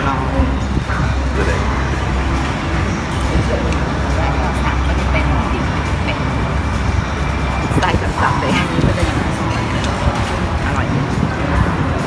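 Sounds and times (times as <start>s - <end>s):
indistinct voices: 0.0s - 12.0s
road traffic rumble: 0.0s - 12.0s.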